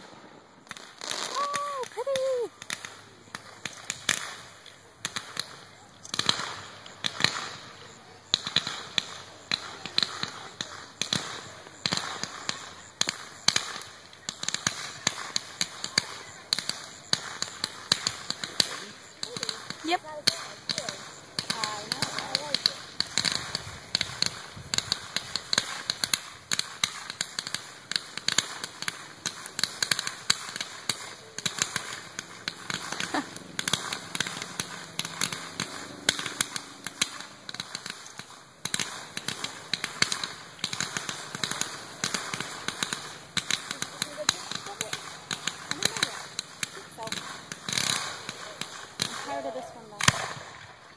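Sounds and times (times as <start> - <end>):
loud firework pops: 0.0 - 50.8
fireworks crackling: 0.0 - 50.9.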